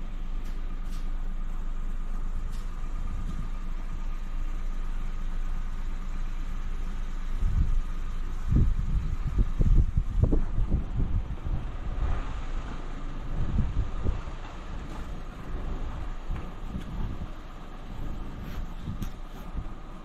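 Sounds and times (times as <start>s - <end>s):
car engine idling: 0.0s - 20.0s
wind buffeting microphone: 7.4s - 20.0s.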